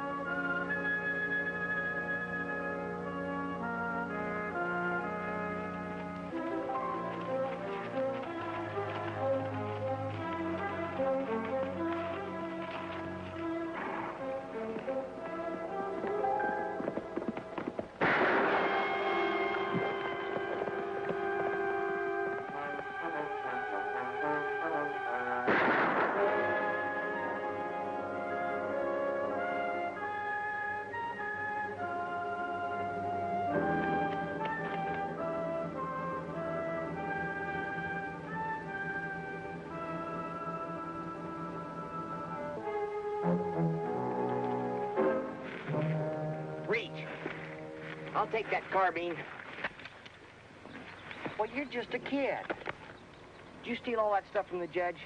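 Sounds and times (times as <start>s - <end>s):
dramatic orchestral music: 0.0s - 17.2s, 18.0s - 49.1s
gunshot with echoing tail: 18.0s - 20.2s, 25.5s - 26.8s.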